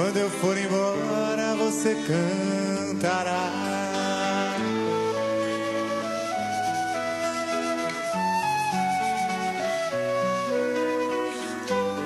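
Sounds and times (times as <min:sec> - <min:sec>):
flute melody: 0:00.0 - 0:12.0.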